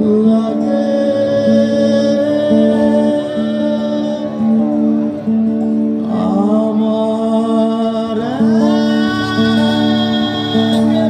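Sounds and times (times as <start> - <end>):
electric guitar: 0.0 - 11.0
live rock band through speakers: 0.0 - 11.0.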